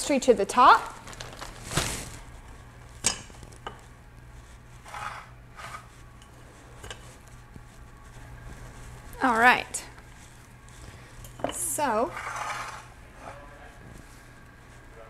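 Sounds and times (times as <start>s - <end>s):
low steady hum: 0.0s - 15.0s
short rustles: 1.0s - 2.3s.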